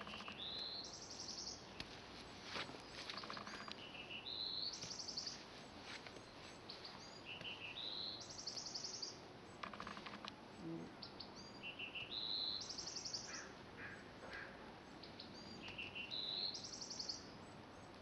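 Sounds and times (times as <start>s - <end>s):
rattle of clicks: 0.0s - 0.4s, 9.6s - 10.4s
songbird singing with trill: 0.0s - 1.9s, 2.9s - 5.4s, 6.2s - 9.7s, 10.6s - 14.1s, 14.9s - 18.0s.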